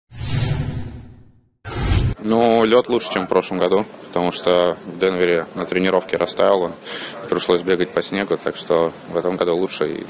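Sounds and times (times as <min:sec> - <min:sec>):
whoosh sound effects: 0:00.1 - 0:02.2.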